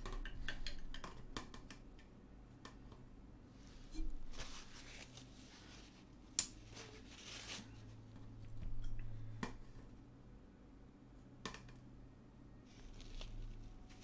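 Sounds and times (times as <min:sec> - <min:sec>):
paper towel crumpling: 0:04.3 - 0:06.0, 0:06.7 - 0:07.9, 0:12.7 - 0:14.0.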